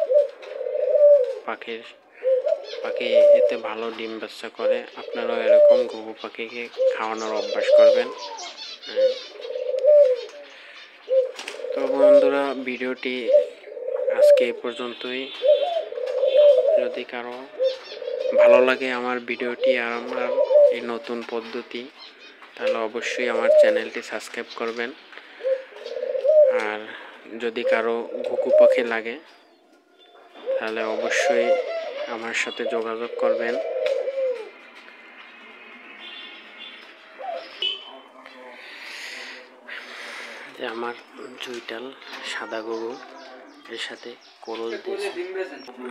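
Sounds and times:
doves cooing: 0:00.0 - 0:45.9
man talking: 0:01.4 - 0:02.0, 0:02.8 - 0:08.3, 0:11.7 - 0:15.4, 0:16.6 - 0:17.6, 0:18.3 - 0:22.0, 0:22.6 - 0:25.0, 0:26.5 - 0:29.3, 0:30.5 - 0:33.7, 0:37.8 - 0:45.9.

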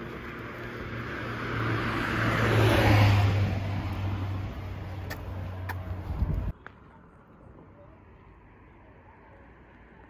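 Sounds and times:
vehicle passing by: 0:00.0 - 0:06.5.

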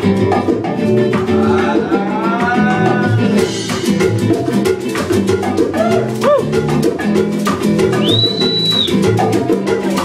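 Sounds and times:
acoustic guitar: 0:00.0 - 0:10.0
hand percussion strikes: 0:00.0 - 0:10.0.

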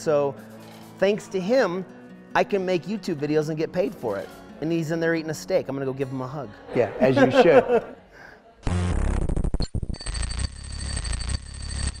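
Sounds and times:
electronic glitch buzz: 0:08.6 - 0:12.0.

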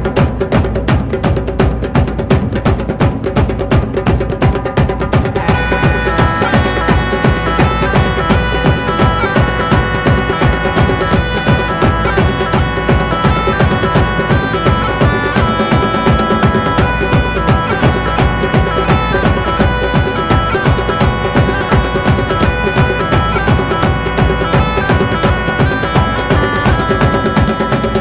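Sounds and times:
drum beat: 0:00.0 - 0:28.0
bagpipes playing: 0:05.3 - 0:28.0.

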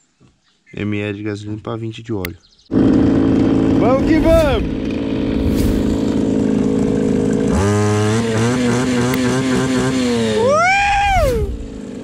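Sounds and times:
brushcutter engine running: 0:02.7 - 0:12.0.

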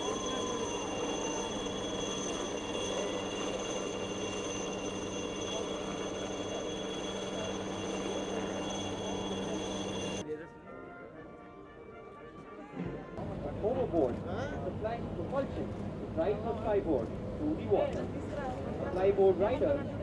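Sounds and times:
helicopter hovering: 0:00.0 - 0:10.2
crowd voices: 0:00.0 - 0:15.6.

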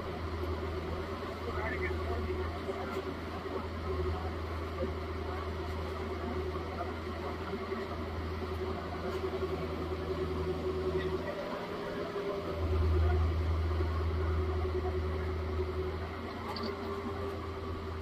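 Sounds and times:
excavator diesel engine running: 0:00.0 - 0:18.0.

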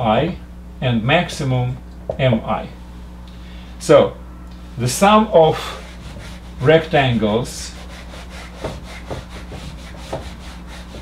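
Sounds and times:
eraser rubbing on whiteboard: 0:05.6 - 0:11.0.

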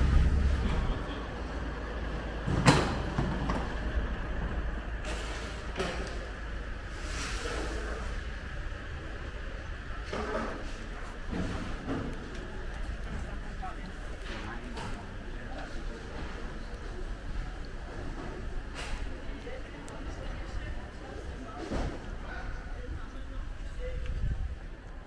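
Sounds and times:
steady low street rumble: 0:00.0 - 0:25.0.

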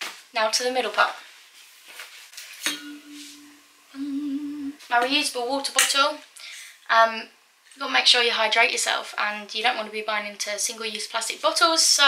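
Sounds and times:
bottle clinks: 0:02.7 - 0:03.8
steady hummed note: 0:02.7 - 0:04.9.

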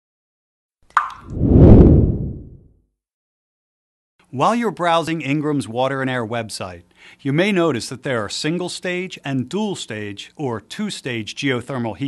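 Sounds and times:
water drop plop: 0:00.9 - 0:01.3.

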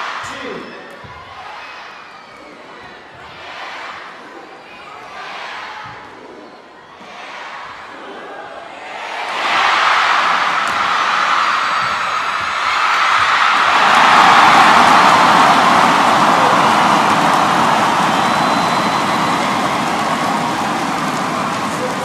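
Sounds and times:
arena crowd cheering: 0:00.0 - 0:22.0.

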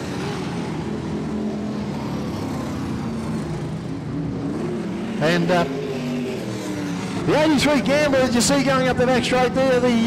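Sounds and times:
race car engines droning: 0:00.0 - 0:10.0.

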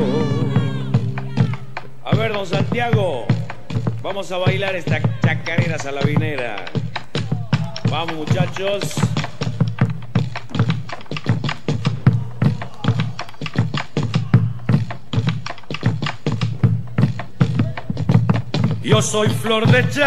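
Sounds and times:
person singing: 0:00.0 - 0:01.8
bass drum beating steady rhythm: 0:00.0 - 0:20.0.

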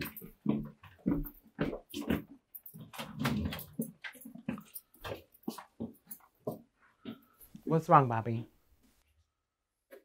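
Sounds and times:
footsteps on tiled floor: 0:00.0 - 0:09.0.

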